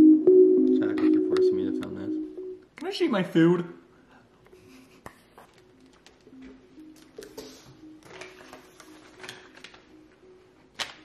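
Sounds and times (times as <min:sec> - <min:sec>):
faint background music: 0:00.0 - 0:11.0
paper wrappers rustling: 0:05.4 - 0:10.2, 0:10.8 - 0:11.0.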